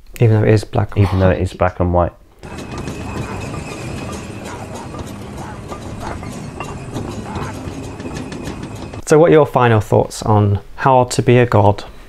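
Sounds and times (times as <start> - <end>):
clatter of clicks and creaks: 2.4 - 9.0
low hum: 2.4 - 9.0.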